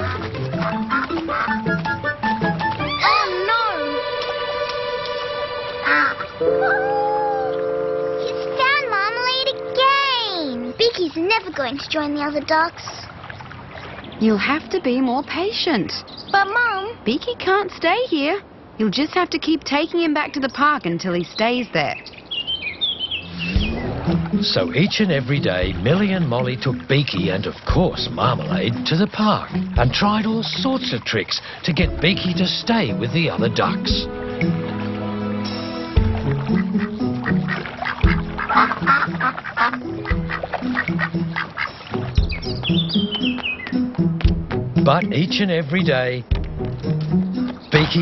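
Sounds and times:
cartoon duck quacking: 0:00.0 - 0:01.9, 0:36.5 - 0:41.7
light background music: 0:00.0 - 0:11.4, 0:23.4 - 0:48.0
small birds chirping: 0:10.6 - 0:17.6, 0:20.0 - 0:27.0, 0:36.2 - 0:45.1, 0:46.0 - 0:48.0.

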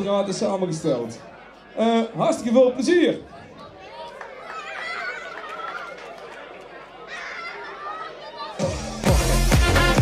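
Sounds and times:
children chattering: 0:01.0 - 0:09.1.

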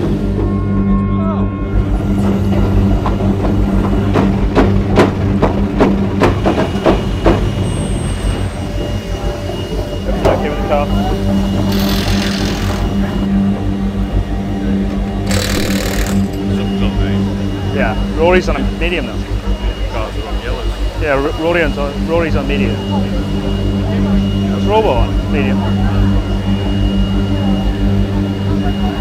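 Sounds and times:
steady low hum: 0:08.4 - 0:29.0.

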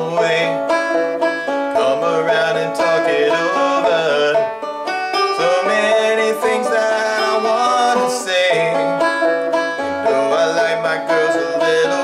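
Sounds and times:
banjo fingerpicked rolls: 0:00.0 - 0:12.0.

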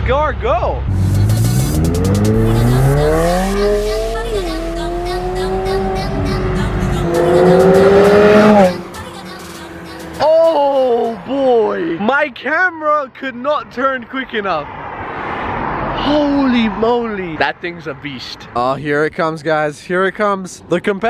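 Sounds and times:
sports car accelerating hard: 0:00.8 - 0:10.2
person exclaiming: 0:10.2 - 0:11.7.

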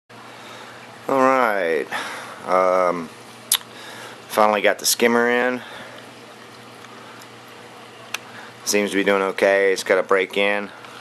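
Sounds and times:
low steady hum: 0:00.1 - 0:11.0.

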